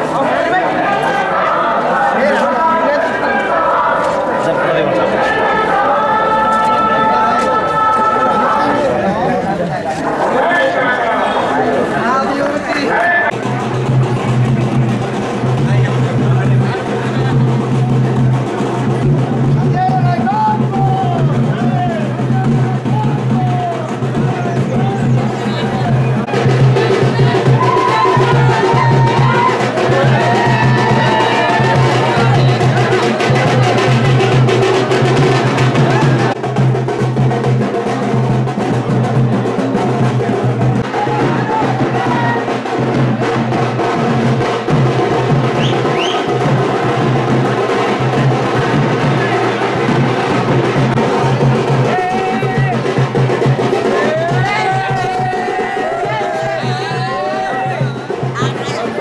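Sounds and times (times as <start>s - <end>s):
crowd voices: 0.0s - 59.0s
loud music with rhythmic drumming: 13.3s - 59.0s.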